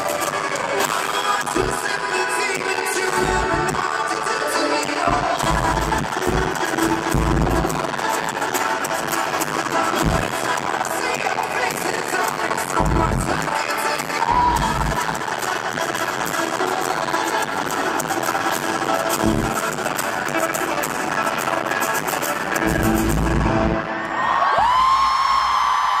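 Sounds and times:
live band with singer: 0.0s - 25.8s
crowd cheering: 3.1s - 19.9s, 20.6s - 26.0s.

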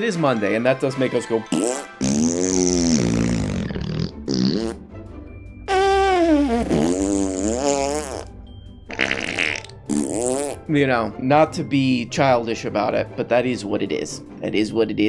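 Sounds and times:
man blowing buzzy raspberries: 1.5s - 4.9s, 5.7s - 10.7s.

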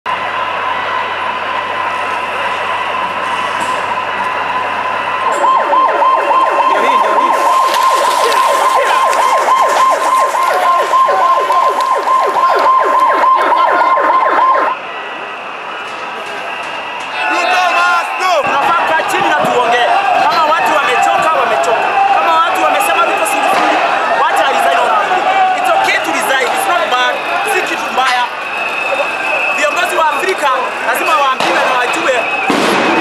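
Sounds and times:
siren steady high tone: 0.1s - 33.0s
siren fast warbling yelp: 2.2s - 14.9s, 17.2s - 33.0s.

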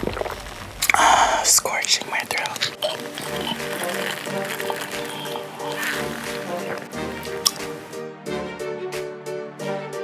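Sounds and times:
person sipping tea noisily: 0.0s - 7.9s.

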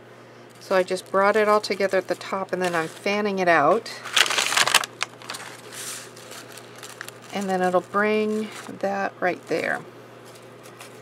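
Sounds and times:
paper rustling: 0.6s - 8.8s, 9.4s - 11.0s.

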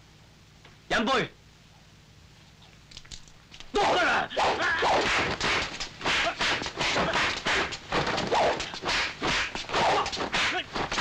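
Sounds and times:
slaps from blows: 3.6s - 11.0s
whip-like swishes: 3.8s - 11.0s.

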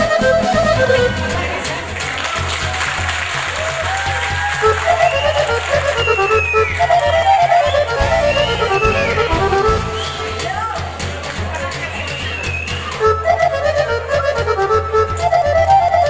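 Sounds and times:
piano accordion melody: 0.0s - 1.7s, 4.6s - 10.6s, 13.0s - 16.0s
low bass accompaniment: 7.9s - 10.4s.

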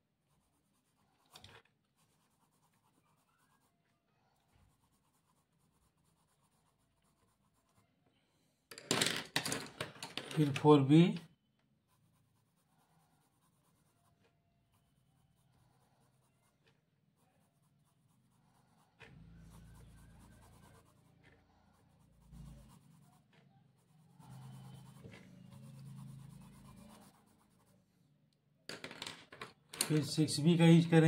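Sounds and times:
pencil scratching on paper: 0.0s - 8.0s, 11.8s - 28.0s.

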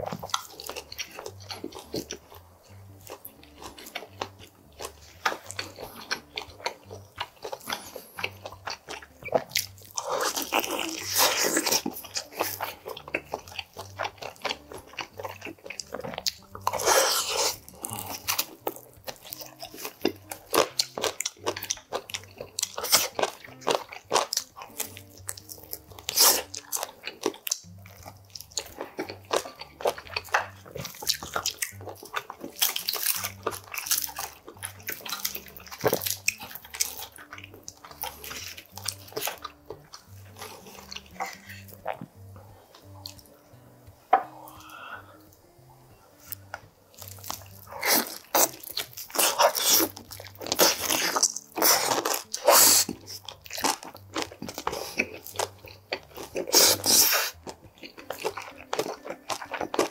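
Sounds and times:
chewing: 0.0s - 59.9s.

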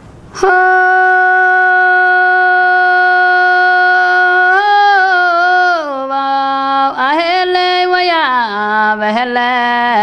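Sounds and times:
woman singing long note: 0.4s - 10.0s.

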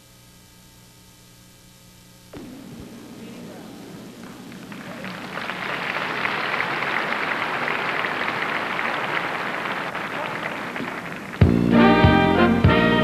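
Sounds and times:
large audience applauding: 2.4s - 12.8s.

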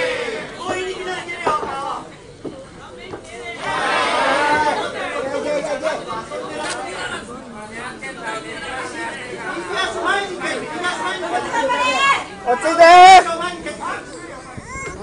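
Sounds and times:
spectators chattering and calling out: 0.0s - 15.0s.

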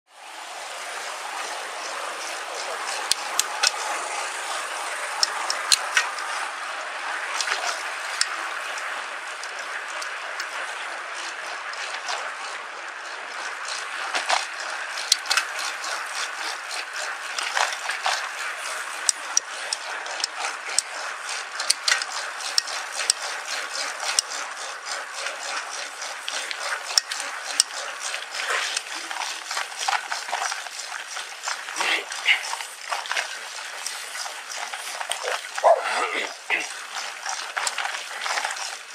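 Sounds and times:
tyre and riding noise: 0.6s - 38.9s
bike clicks and rattles: 0.9s - 38.9s.

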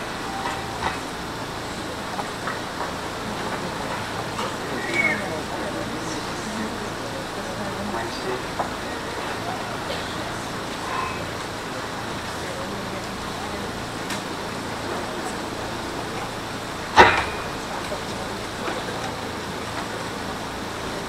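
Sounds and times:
murmur of voices: 0.0s - 21.0s
room noise: 0.0s - 21.0s.

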